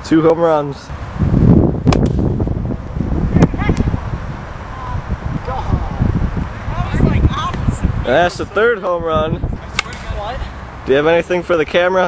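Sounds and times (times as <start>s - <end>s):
wind buffeting microphone: 0.9s - 11.1s
plastic bat hitting ball: 1.9s - 2.2s, 9.7s - 10.1s
person shouting: 4.7s - 6.1s.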